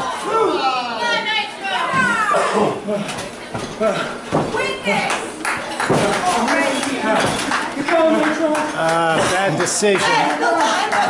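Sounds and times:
people shouting and yelling: 0:00.0 - 0:03.2.

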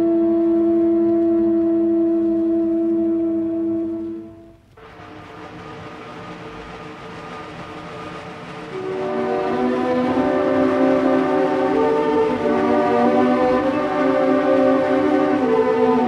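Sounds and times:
orchestral music with held chords: 0:00.0 - 0:05.0, 0:08.3 - 0:16.0.

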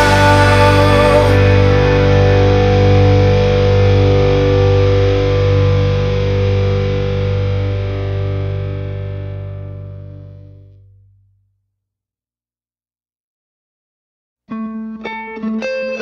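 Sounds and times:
distorted electric guitar chord: 0:00.0 - 0:11.2.

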